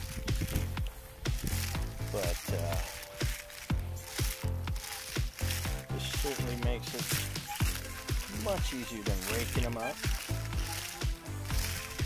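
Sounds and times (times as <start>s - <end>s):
acorns clicking and rattling: 0.0s - 12.0s
wire basket rolling over lawn: 0.0s - 12.0s.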